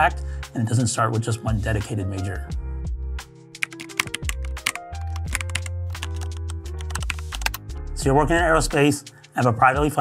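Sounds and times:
background music with bass line: 0.0s - 10.0s
keyboard typing clicks: 3.6s - 7.6s.

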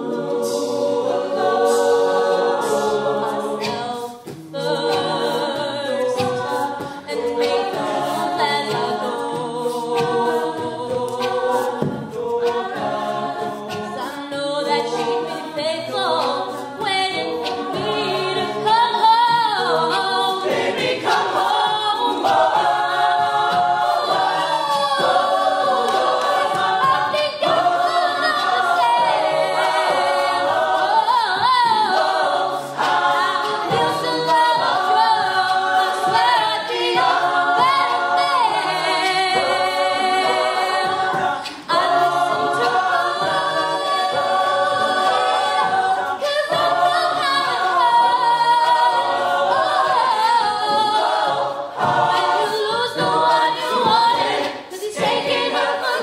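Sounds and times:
vocal harmonies: 0.0s - 56.0s
woman singing lead: 3.4s - 56.0s.

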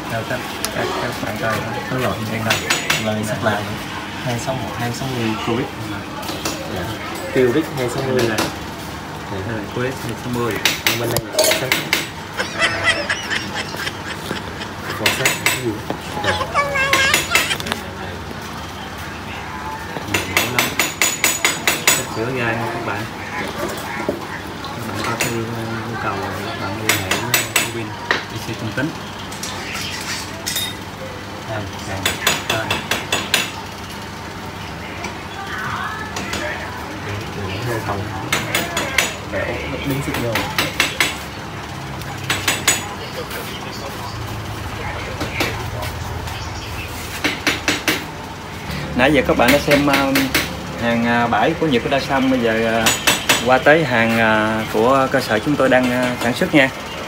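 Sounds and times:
high-pitched voice: 16.2s - 17.6s.

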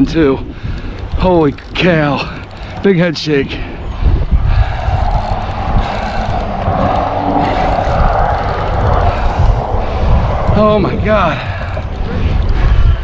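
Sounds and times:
low rumble: 0.5s - 13.0s
fishing reel drag buzzing: 0.8s - 2.9s, 4.5s - 9.7s.

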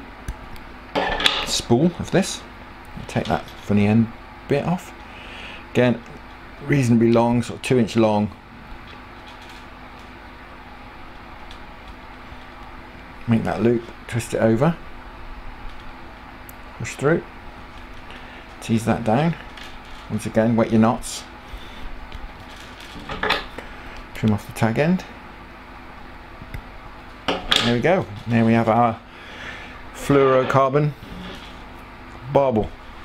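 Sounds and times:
low room hum: 0.0s - 33.0s
steady low hiss: 0.0s - 33.0s.

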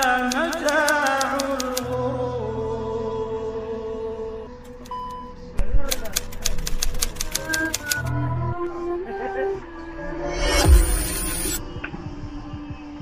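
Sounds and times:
typewriter key clicks: 0.0s - 1.9s, 5.9s - 8.1s
intro music with drone tones: 1.3s - 13.0s.

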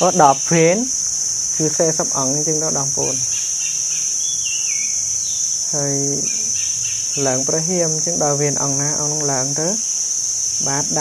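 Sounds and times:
bird chirping: 0.0s - 11.0s
high-pitched insect drone: 0.0s - 11.0s.

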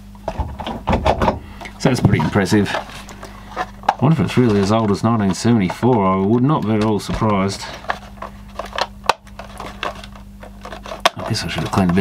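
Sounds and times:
plastic plug and cord handled: 1.6s - 12.0s.

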